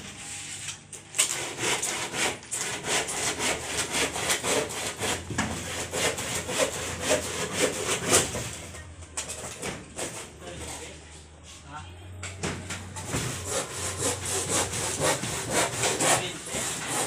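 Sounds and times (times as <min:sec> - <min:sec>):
hand saw cutting wood: 0:01.2 - 0:08.8, 0:09.4 - 0:10.9, 0:13.0 - 0:17.0.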